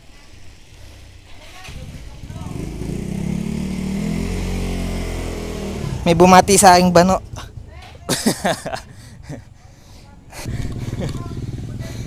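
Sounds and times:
motor scooter engine running: 0.9s - 7.6s, 10.4s - 12.0s.

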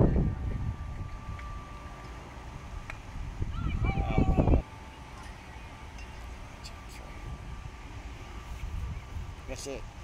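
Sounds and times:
wind rumbling on microphone: 0.0s - 4.7s, 6.4s - 10.0s.

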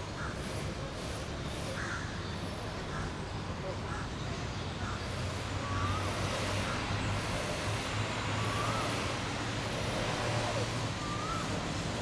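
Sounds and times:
bird calls: 3.8s - 7.0s, 11.0s - 11.6s.

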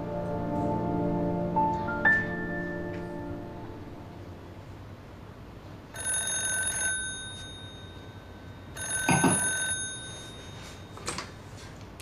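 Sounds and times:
telephone ringing: 5.9s - 11.1s.

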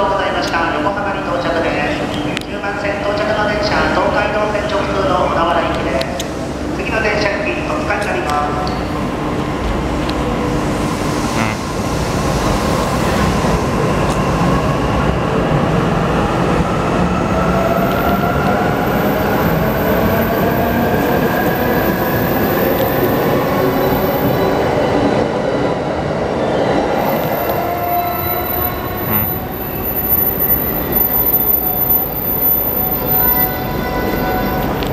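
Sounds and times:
train wheels on rails: 27.0s - 34.9s.

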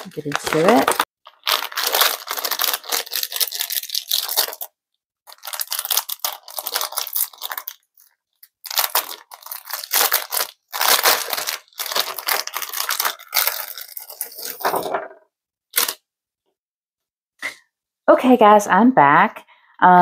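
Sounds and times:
plastic packaging crinkling and tearing: 0.0s - 14.9s, 15.7s - 16.0s.

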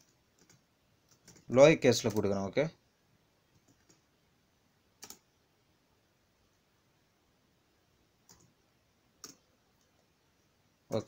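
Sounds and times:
keyboard keystroke clicks: 5.0s - 5.2s.

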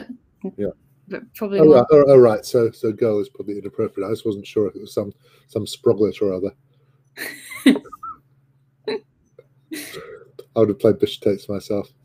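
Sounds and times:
person laughing breathily: 9.8s - 10.3s.

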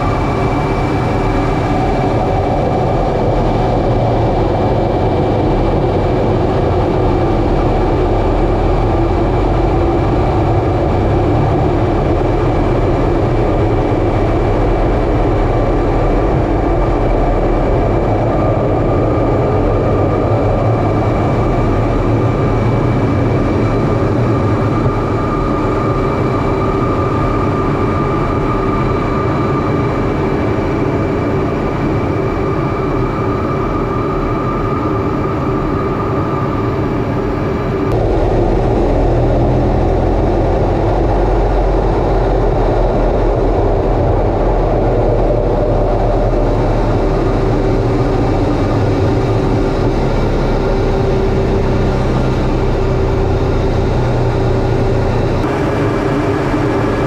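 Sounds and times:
jet engine rumble with high whine: 0.0s - 57.0s.

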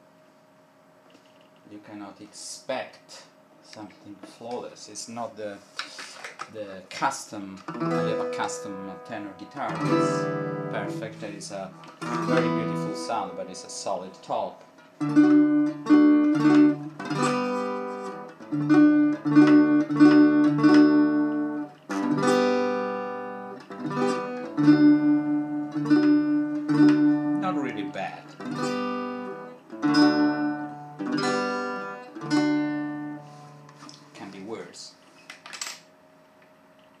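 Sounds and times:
acoustic guitar strummed in chords: 7.7s - 33.8s.

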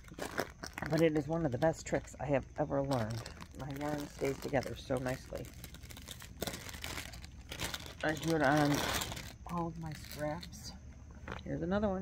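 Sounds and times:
plastic bag crinkling: 0.0s - 11.5s.

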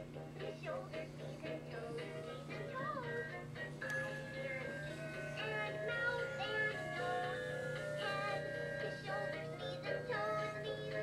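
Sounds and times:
toy singing in synthesized voice: 0.2s - 11.0s
backing tune: 1.8s - 11.0s.

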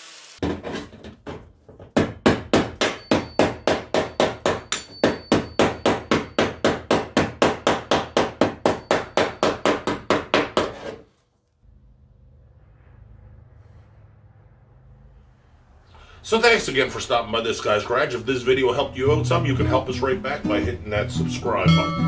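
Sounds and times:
hammer tapping on steel: 2.0s - 10.6s.

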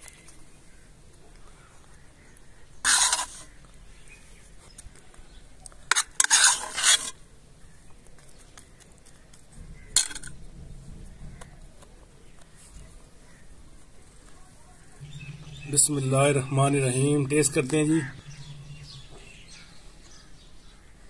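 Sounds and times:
spoon scraping metal pot: 2.8s - 3.5s, 5.9s - 7.2s.

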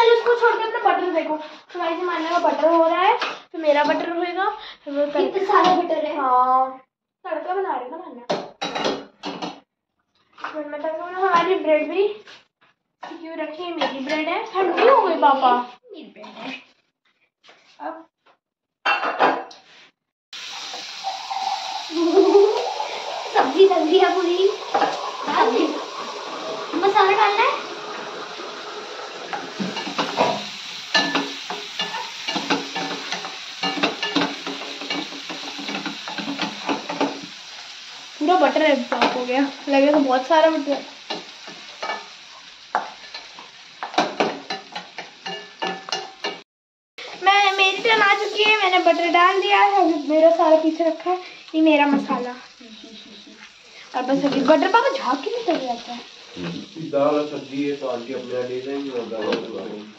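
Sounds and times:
vegetables sizzling in a frying pan: 20.4s - 46.4s, 47.0s - 59.9s.

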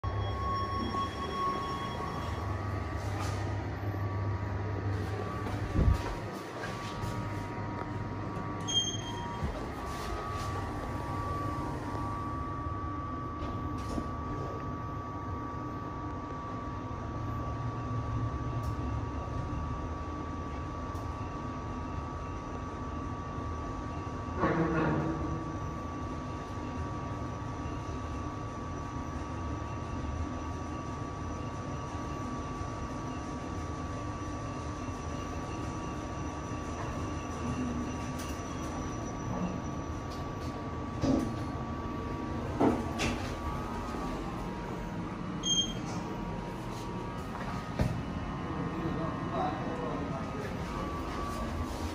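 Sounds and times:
high whine: 0.0s - 19.8s
lift running hum: 0.0s - 51.9s.

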